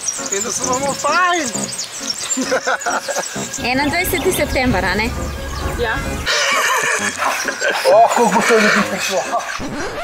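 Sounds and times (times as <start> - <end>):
background music: 0.0 - 9.9
person laughing loudly: 2.4 - 3.4, 6.3 - 10.0.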